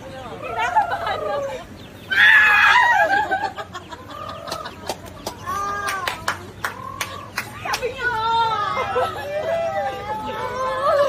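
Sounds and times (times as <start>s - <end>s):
chickens squawking and clucking: 0.0s - 11.0s.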